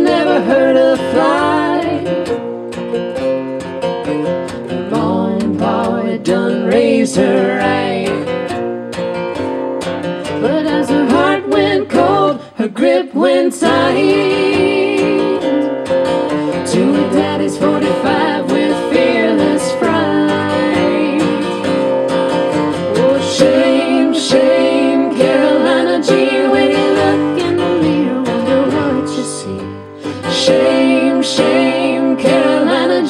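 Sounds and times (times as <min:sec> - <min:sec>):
person singing: 0:00.0 - 0:02.4, 0:04.8 - 0:08.5, 0:10.3 - 0:15.8, 0:16.4 - 0:21.6, 0:22.8 - 0:33.0
acoustic guitar strumming: 0:00.0 - 0:33.0
small plucked string instrument: 0:00.0 - 0:33.0.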